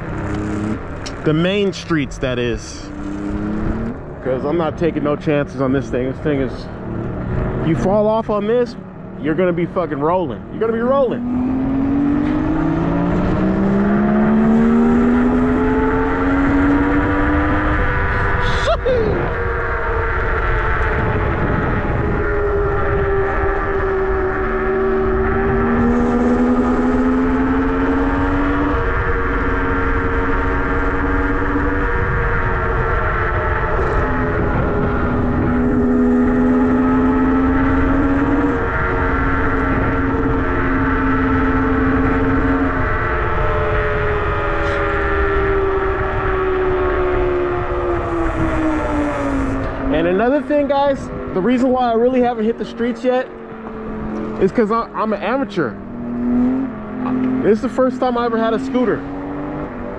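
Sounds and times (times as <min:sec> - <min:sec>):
wind on microphone: 0:16.2 - 0:30.6, 0:31.4 - 0:49.9.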